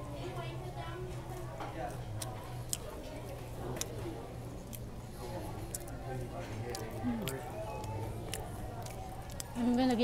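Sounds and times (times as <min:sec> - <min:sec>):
faint chatter: 0:00.0 - 0:10.0
steady low hum: 0:00.0 - 0:10.0.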